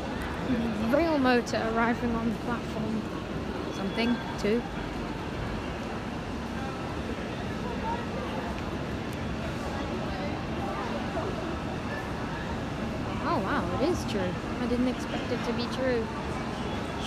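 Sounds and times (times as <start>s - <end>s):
distant chatter: 0.0s - 17.0s.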